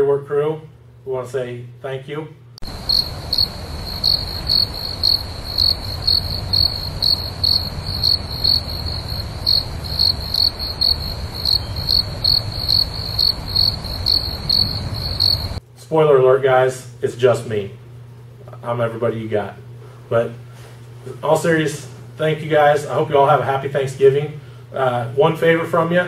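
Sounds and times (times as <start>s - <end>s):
cricket chirping: 2.6s - 15.6s.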